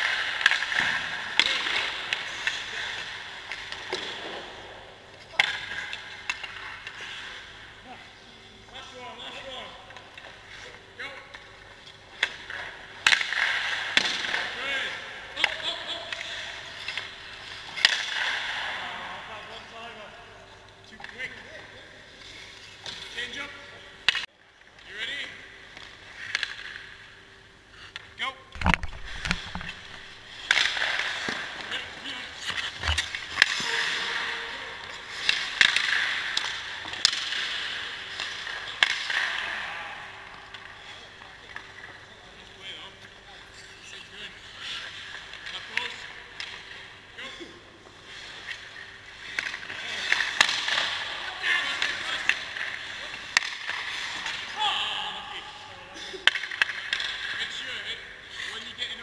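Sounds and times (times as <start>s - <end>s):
hockey sticks and pucks clacking: 0.0s - 7.7s, 8.6s - 18.9s, 20.9s - 27.1s, 27.8s - 47.0s, 47.8s - 59.0s
skate blades scraping ice: 29.0s - 39.3s.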